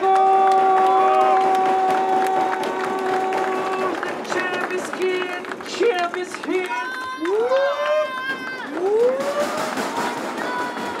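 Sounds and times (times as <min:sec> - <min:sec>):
crowd cheering and clapping: 0:00.0 - 0:11.0.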